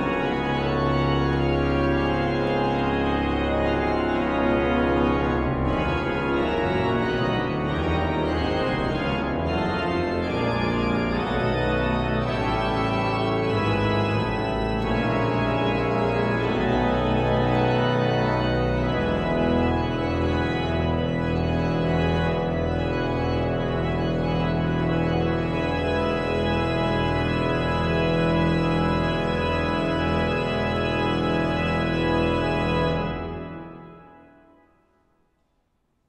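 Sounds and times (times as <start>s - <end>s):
pipe organ playing chords: 0.0s - 34.8s.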